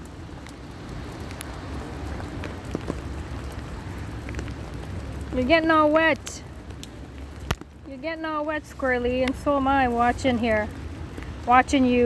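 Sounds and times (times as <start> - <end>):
steady rain falling: 0.0 - 12.0.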